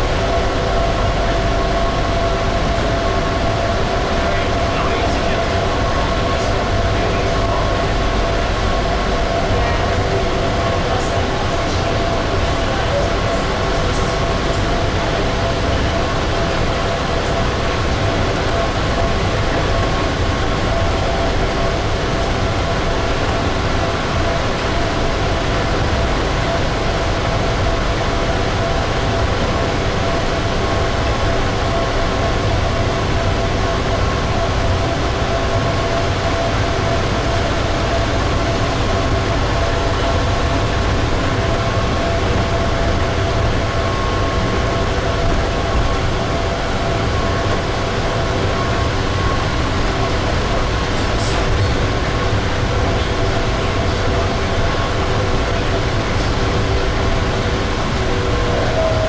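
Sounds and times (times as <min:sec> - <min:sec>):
multi-tone vehicle whine: 0:00.0 - 0:59.0
shuttle train rumble: 0:00.0 - 0:59.0.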